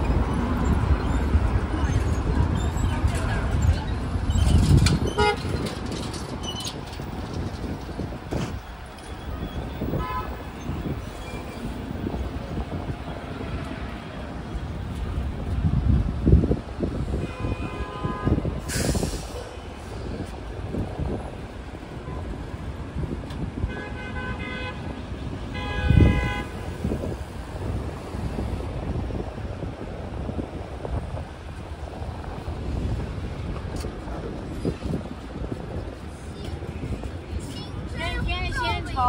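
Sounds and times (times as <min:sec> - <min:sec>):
traffic rumble: 0:00.0 - 0:39.0
car horns honking: 0:05.0 - 0:05.6, 0:09.8 - 0:11.0, 0:23.6 - 0:24.9, 0:25.5 - 0:26.9
short hiss: 0:18.6 - 0:19.6.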